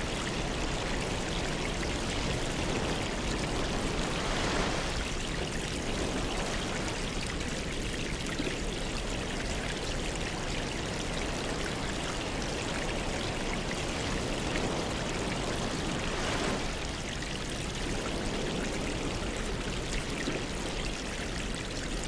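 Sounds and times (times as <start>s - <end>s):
water trickling and splashing: 0.0s - 22.0s.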